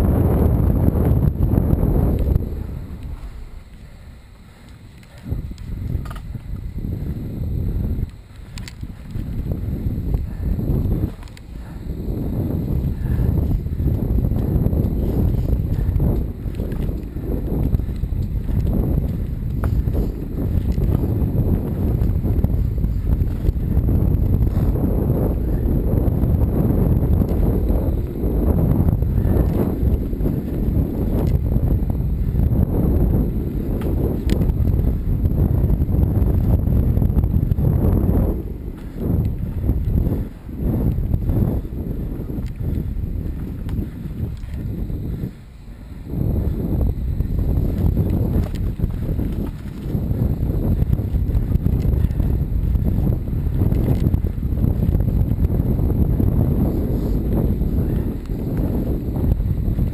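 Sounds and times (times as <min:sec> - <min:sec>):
bike rattling over trail: 0:00.0 - 0:59.9
wind buffeting microphone: 0:00.0 - 0:59.9.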